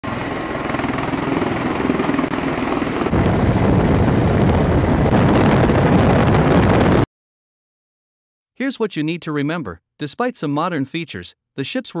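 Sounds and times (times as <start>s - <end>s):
aircraft engine noise: 0.0s - 7.1s.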